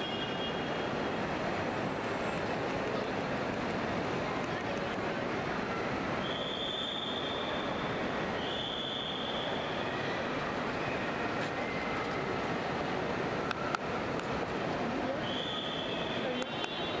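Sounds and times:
outdoor crowd hubbub: 0.0s - 17.0s.

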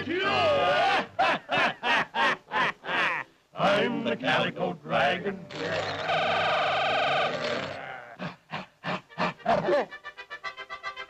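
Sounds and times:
cartoon dragon laughing and roaring: 5.5s - 9.7s.

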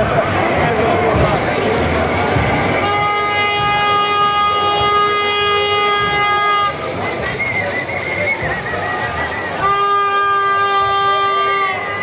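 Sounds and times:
crowd chatter: 0.0s - 12.0s
horn long steady note: 1.1s - 7.3s, 9.3s - 12.0s.

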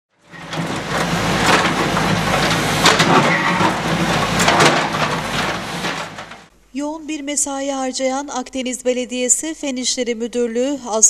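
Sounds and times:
diesel engine rumbling: 0.2s - 6.5s
concrete blocks clacking together: 0.3s - 6.5s.

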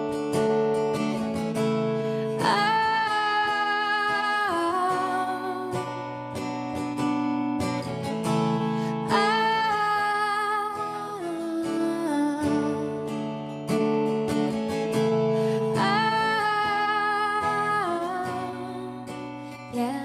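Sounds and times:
acoustic guitar strumming: 0.0s - 20.0s
woman singing: 0.0s - 20.0s.

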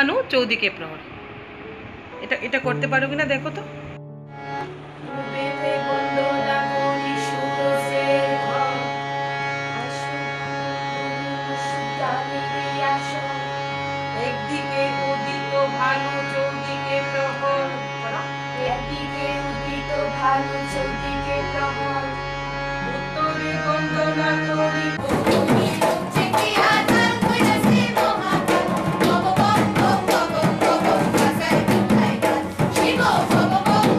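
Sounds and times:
harmonium playing chords: 2.6s - 33.9s
woman singing folk song: 5.1s - 9.0s, 11.4s - 13.6s
sharp percussion strokes: 25.0s - 33.9s.

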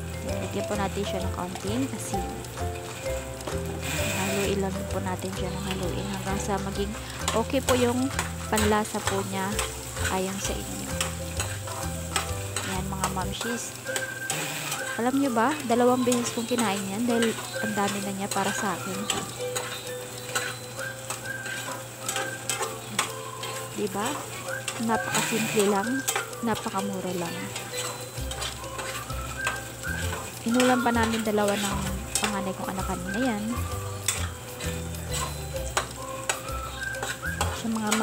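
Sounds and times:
sausage sizzling in a frying pan: 0.0s - 38.0s
utensil clicking against pan: 0.1s - 38.0s
spatula scraping a pan: 1.5s - 4.7s, 5.3s - 38.0s.

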